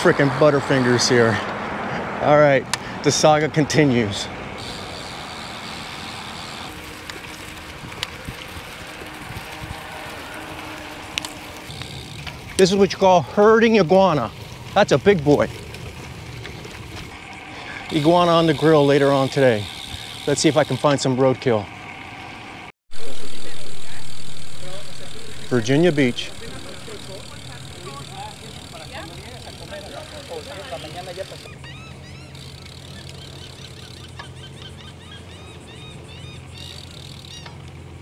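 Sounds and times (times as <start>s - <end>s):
bike tyre noise: 0.0s - 38.0s
wind and road noise while cycling: 0.0s - 38.0s
wind rush on microphone: 7.6s - 12.6s.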